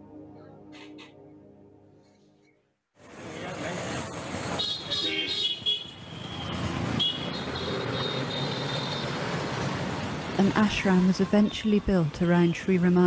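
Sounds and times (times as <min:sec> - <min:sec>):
vehicle engines passing: 0:03.0 - 0:12.8
high car horn toots: 0:04.6 - 0:06.3.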